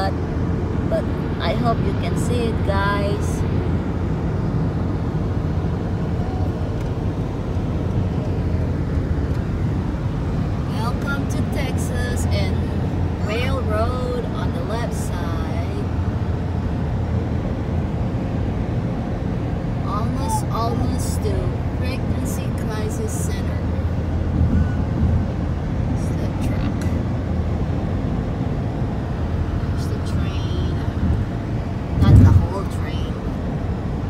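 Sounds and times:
car road and engine rumble: 0.0s - 34.0s
faint voice: 19.9s - 20.8s.

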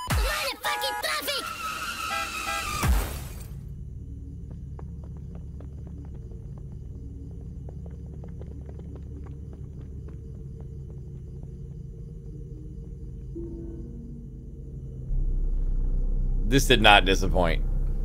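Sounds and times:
low steady rumble: 3.6s - 18.0s.

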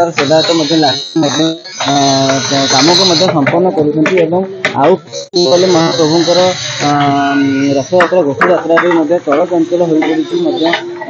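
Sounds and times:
person speaking: 0.0s - 11.0s.

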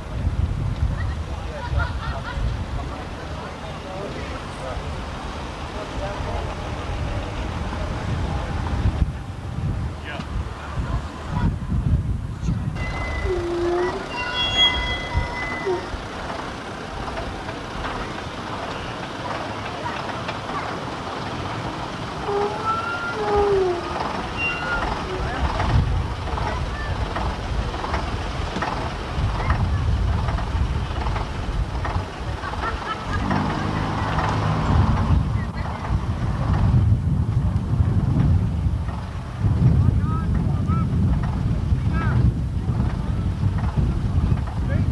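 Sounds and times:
bus engine rumbling: 0.0s - 44.9s.

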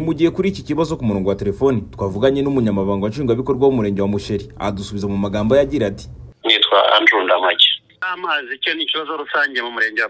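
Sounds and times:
man speaking over telephone: 6.4s - 10.0s.

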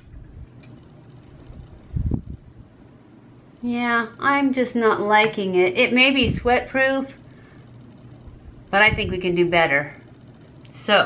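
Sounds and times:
low handling rumble: 0.0s - 11.0s.

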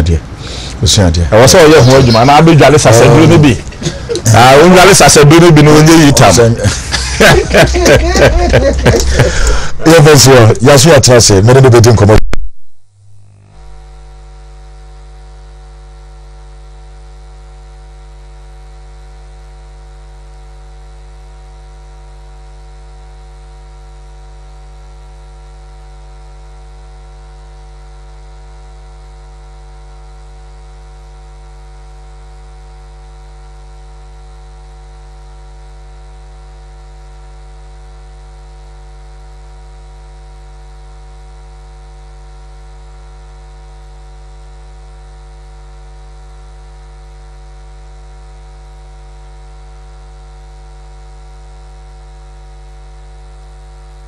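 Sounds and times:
electrical mains hum: 0.0s - 54.0s.

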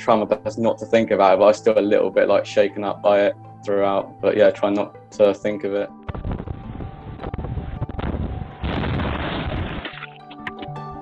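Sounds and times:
wind noise on microphone: 6.1s - 10.6s
brick wall collapsing: 7.3s - 10.4s.

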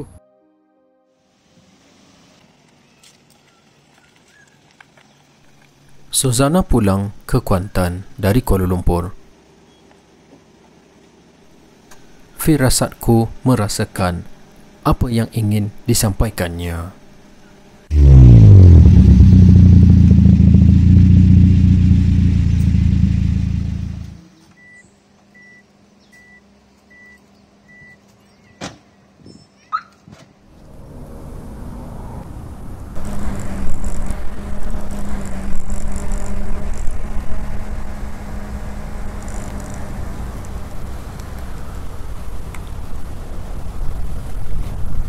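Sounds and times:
car engine starting and revving: 17.9s - 24.2s, 30.6s - 42.4s.

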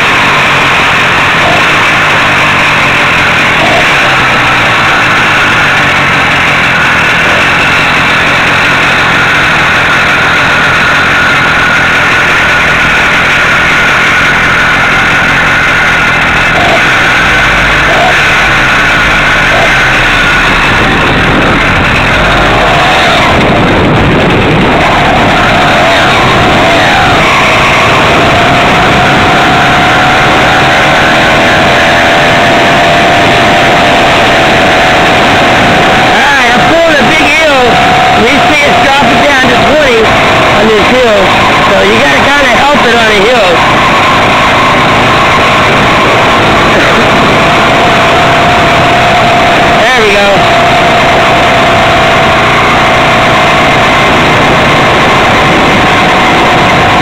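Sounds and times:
small two-stroke engine running: 0.0s - 57.0s.

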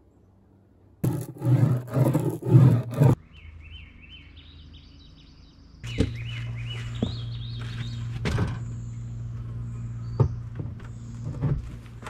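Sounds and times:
roller strokes on wet laminate: 1.0s - 3.2s
songbirds chirping: 3.2s - 12.0s.

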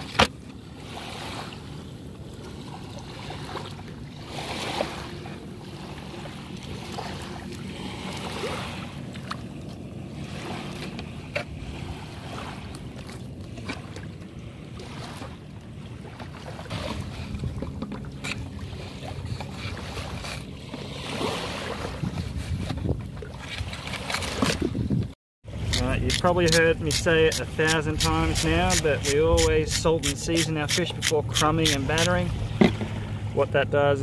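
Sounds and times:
wind: 0.0s - 34.0s.

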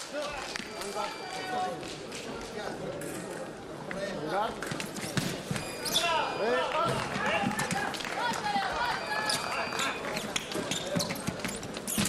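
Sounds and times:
shoes squeaking on floor: 4.6s - 6.4s, 8.9s - 12.0s.

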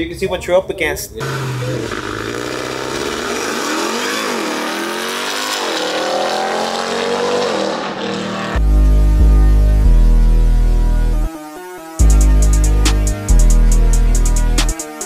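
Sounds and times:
truck engine accelerating hard: 1.2s - 8.7s
music with heavy bass beat: 8.6s - 15.0s.

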